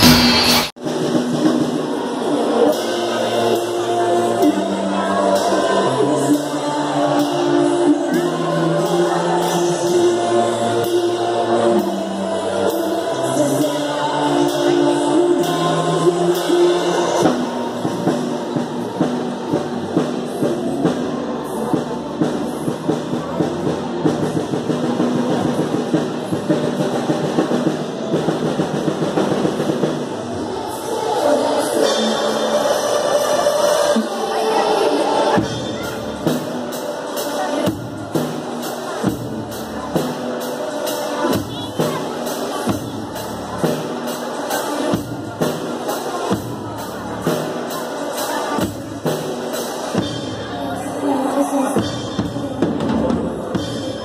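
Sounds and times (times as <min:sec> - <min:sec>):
cymbal hits: 0:00.0 - 0:00.8
drum kit playing: 0:00.0 - 0:03.8, 0:35.3 - 0:50.9.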